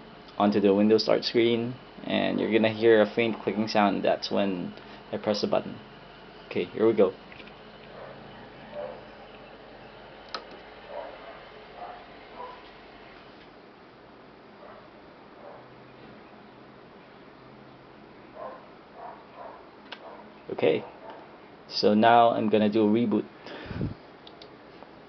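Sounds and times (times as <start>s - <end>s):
low steady hum: 0.0s - 25.0s.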